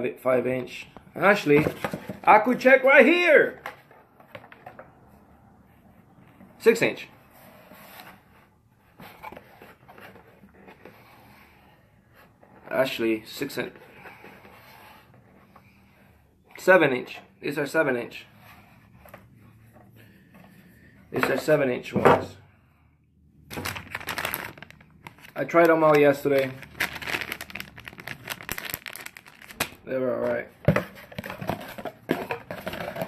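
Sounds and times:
packaging rustling in cardboard box: 0:23.5 - 0:29.8.

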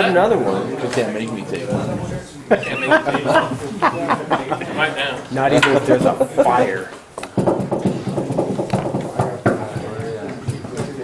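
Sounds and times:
indistinct talk of people: 0:00.0 - 0:11.0.

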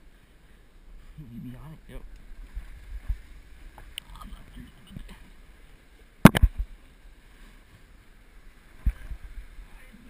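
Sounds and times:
wind and handling rumble: 0:00.0 - 0:10.0.

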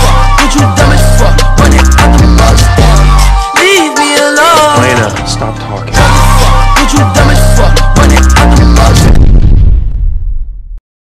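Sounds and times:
deep boom explosion effect: 0:08.7 - 0:10.8.

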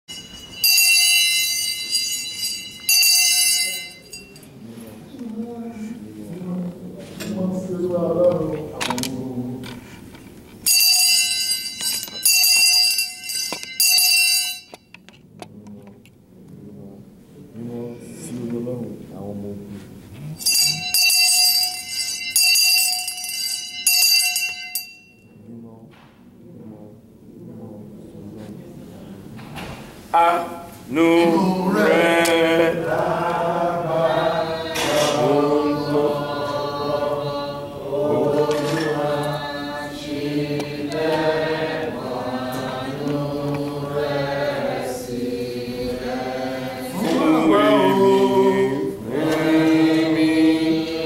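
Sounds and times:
brass handbell ringing: 0:00.1 - 0:04.5, 0:10.6 - 0:14.9, 0:20.4 - 0:25.4
person speaking: 0:30.2 - 0:33.6, 0:47.0 - 0:49.0.

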